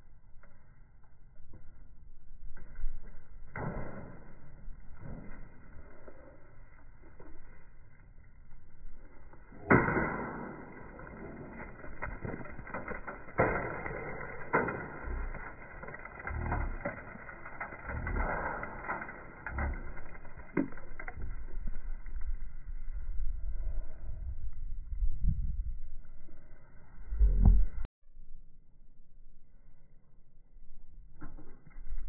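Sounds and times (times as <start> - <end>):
bat smashing objects: 9.6 - 21.1.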